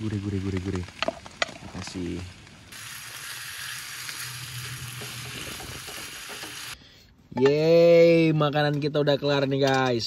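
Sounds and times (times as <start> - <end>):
meat and vegetables sizzling in pan: 0.0 - 6.8.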